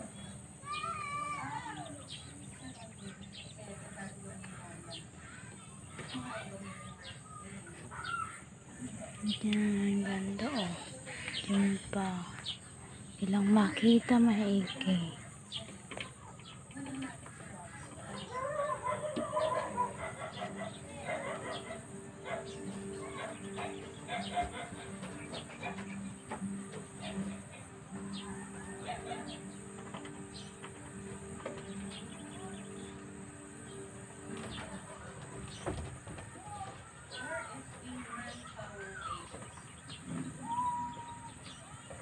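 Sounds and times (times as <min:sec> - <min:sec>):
bird calls: 0:00.0 - 0:42.0
rooster crowing: 0:28.0 - 0:29.5.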